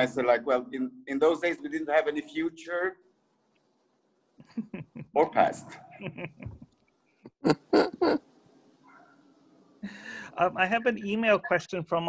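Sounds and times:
man laughing: 0:04.4 - 0:06.7, 0:07.3 - 0:08.2.

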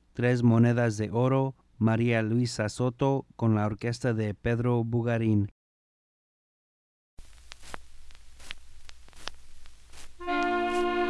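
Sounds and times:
needle clicks: 0:07.2 - 0:10.9
record crackling hiss: 0:07.2 - 0:11.0
orchestra held chord: 0:10.2 - 0:11.0.

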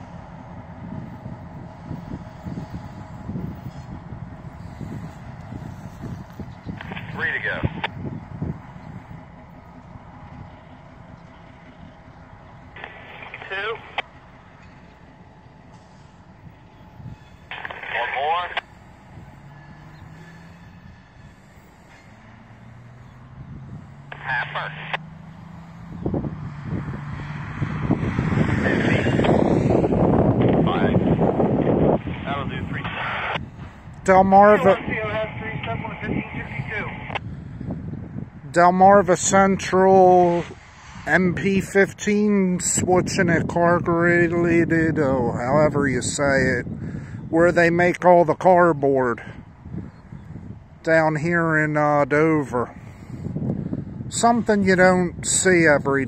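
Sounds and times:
diesel locomotive engine rumbling: 0:00.0 - 0:56.0
wind buffeting microphone: 0:00.0 - 0:56.0
radio chatter from a scanner: 0:05.8 - 0:08.0, 0:12.8 - 0:14.1, 0:17.4 - 0:18.8, 0:24.1 - 0:25.0, 0:28.6 - 0:29.4, 0:30.4 - 0:31.2, 0:32.0 - 0:37.2.

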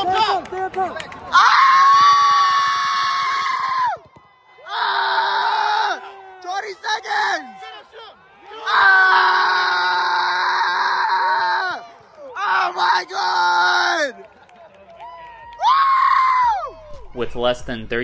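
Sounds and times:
people shouting long cries: 0:04.6 - 0:14.2.

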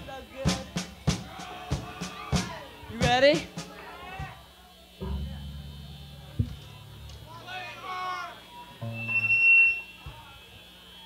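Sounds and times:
short low note from amplifier: 0:05.0 - 0:07.3
piercing high feedback tone: 0:08.5 - 0:10.6.

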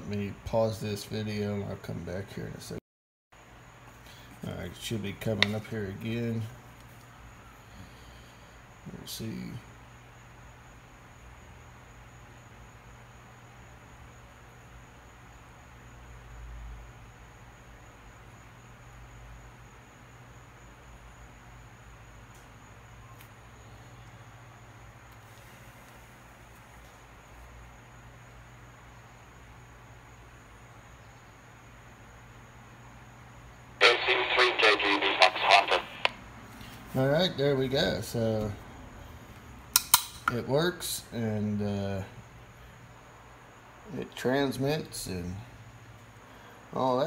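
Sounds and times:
tinny voice over radio: 0:33.8 - 0:36.2.

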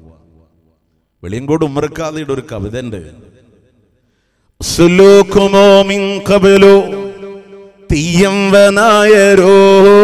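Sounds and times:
man chanting melodic recitation: 0:04.6 - 0:10.0.

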